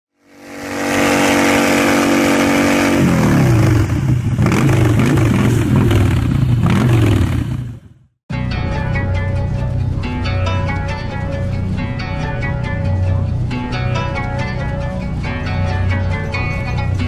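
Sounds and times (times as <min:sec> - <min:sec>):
engine revving: 0:00.1 - 0:08.1.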